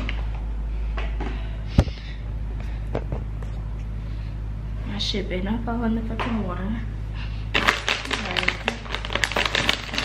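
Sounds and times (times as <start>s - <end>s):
steady low hum: 0.0s - 10.0s
plastic pouch crinkling: 7.5s - 10.0s.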